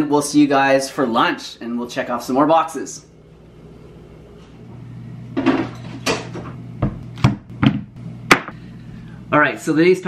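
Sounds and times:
steady low hum: 0:01.2 - 0:10.0.

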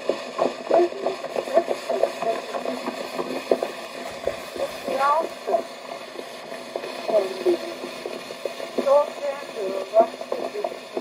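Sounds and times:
recording crackle: 0:00.0 - 0:11.0
recording surface hiss: 0:00.0 - 0:11.0
thin muffled voice speaking: 0:00.7 - 0:02.8, 0:04.6 - 0:05.7, 0:08.8 - 0:11.0.

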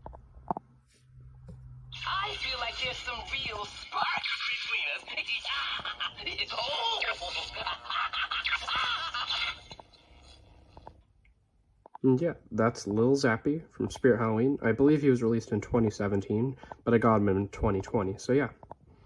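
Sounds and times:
tinny recorded voice from speaker: 0:02.0 - 0:09.8.

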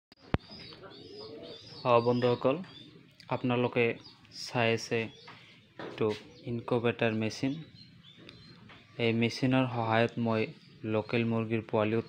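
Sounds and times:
chicks cheeping: 0:00.2 - 0:12.0
man talking: 0:01.8 - 0:05.2, 0:05.9 - 0:07.7, 0:09.0 - 0:12.0.

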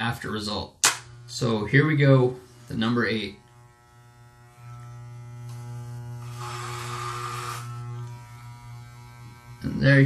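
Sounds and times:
clipper rasping through hair: 0:00.8 - 0:01.2, 0:04.4 - 0:08.3
electric hair clipper buzzing: 0:00.8 - 0:10.0.

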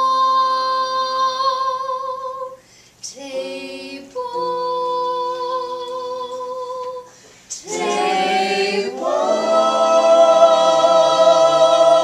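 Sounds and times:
group singing in mixed voices: 0:03.2 - 0:04.6, 0:07.6 - 0:12.0.

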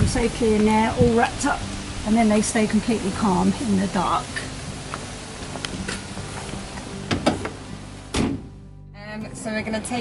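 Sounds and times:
van door being handled: 0:07.0 - 0:08.6.

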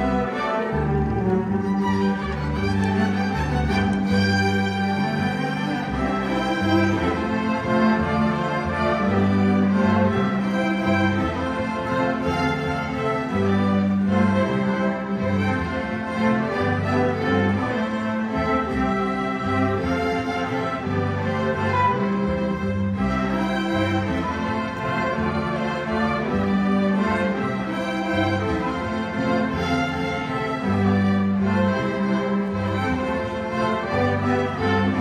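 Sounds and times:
string orchestra playing: 0:00.0 - 0:35.0.

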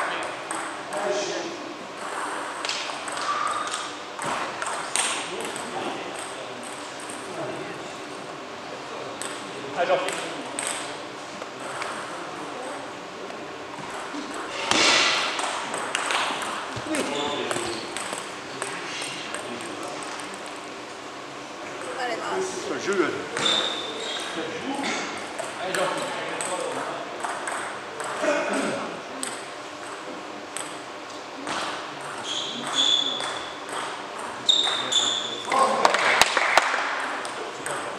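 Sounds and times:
background murmur: 0:00.0 - 0:37.9
voices in a large hall: 0:00.0 - 0:37.9
table tennis balls clicking: 0:15.4 - 0:20.3.

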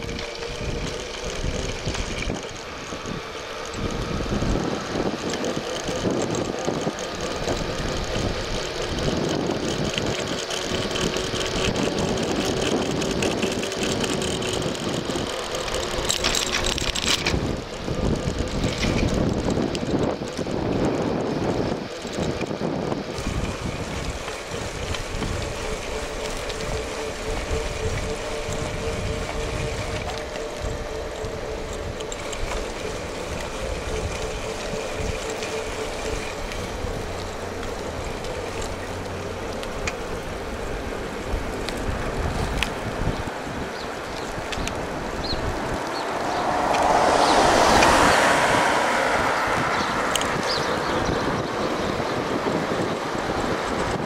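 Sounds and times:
road and tyre rumble: 0:00.0 - 0:54.0
wind buffeting microphone: 0:00.0 - 0:54.0.

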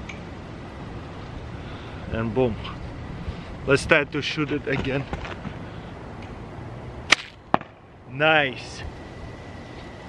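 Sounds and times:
slingshot bands snapping: 0:07.1 - 0:07.4
arrow striking target: 0:07.1 - 0:07.8.

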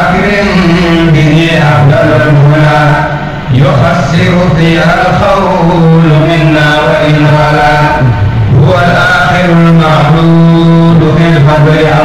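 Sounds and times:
low held tone: 0:00.0 - 0:12.0
men chanting: 0:00.0 - 0:12.0.

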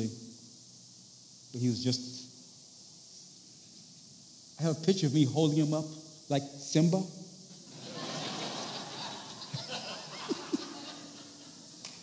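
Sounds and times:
congregation laughing: 0:07.7 - 0:11.8.

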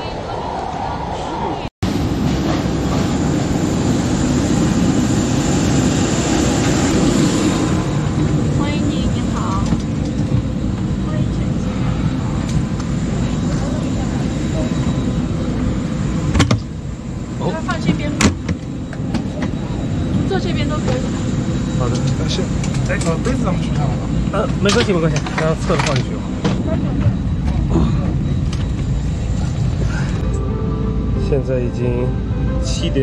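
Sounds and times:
aircraft and ground equipment rumble: 0:00.0 - 0:33.0
airliner cabin hum: 0:00.0 - 0:33.0
faint high whine: 0:03.3 - 0:33.0.

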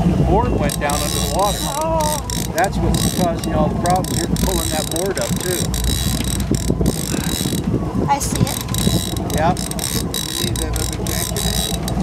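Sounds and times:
fishing reel ratcheting clicks: 0:00.7 - 0:07.7, 0:08.5 - 0:12.0.

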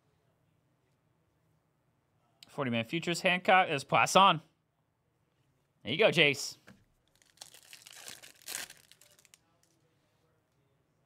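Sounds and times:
foil wrapper tearing and crinkling: 0:07.1 - 0:09.7.

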